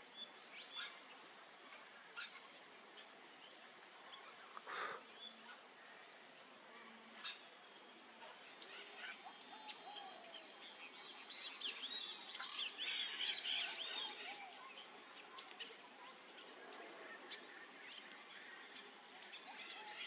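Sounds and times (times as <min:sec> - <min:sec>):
wild birds chirping: 0:00.0 - 0:20.0.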